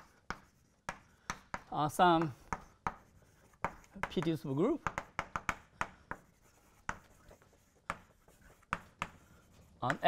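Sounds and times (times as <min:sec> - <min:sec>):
chalk tapping and scraping on blackboard: 0:00.0 - 0:10.0
man speaking: 0:04.0 - 0:04.9, 0:09.8 - 0:10.0.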